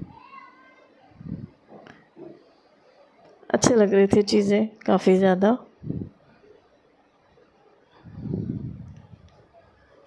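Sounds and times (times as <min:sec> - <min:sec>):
child's high voice: 0:00.0 - 0:00.9.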